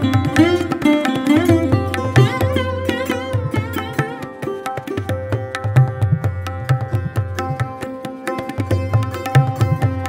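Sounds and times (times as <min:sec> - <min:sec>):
plucked sarod notes: 0:00.0 - 0:10.0
tabla strokes: 0:00.0 - 0:10.0.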